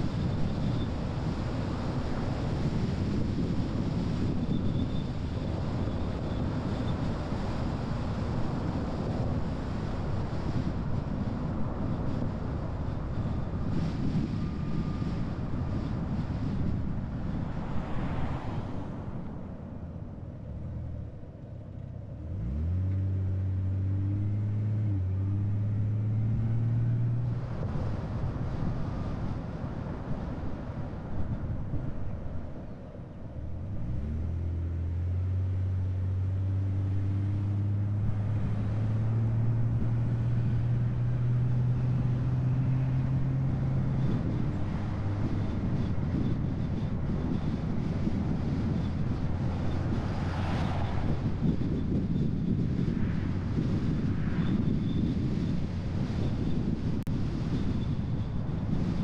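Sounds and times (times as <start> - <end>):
road noise: 0.0 - 59.0
car engine: 0.1 - 58.1.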